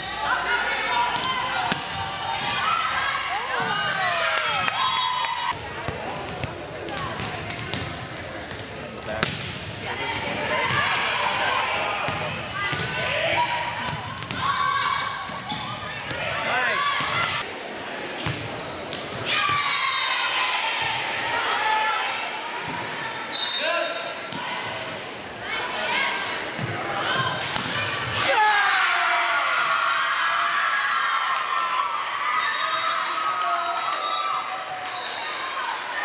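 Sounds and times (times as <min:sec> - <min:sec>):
players calling and shouting: 0:00.0 - 0:17.6
spectators' voices: 0:00.0 - 0:30.6.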